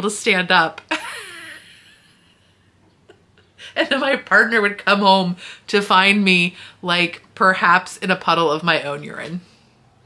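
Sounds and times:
woman laughing: 0.9 - 4.1.

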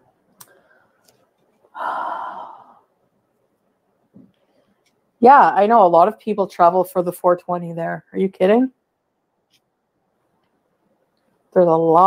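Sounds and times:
woman sighing: 1.7 - 2.9.

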